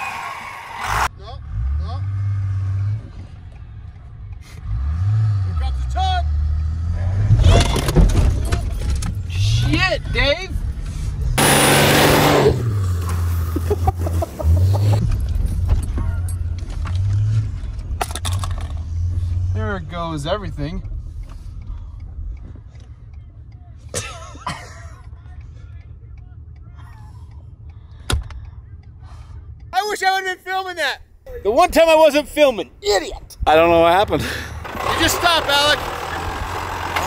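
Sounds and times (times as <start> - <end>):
vehicle engine revving: 0.8 - 23.5, 33.5 - 37.0.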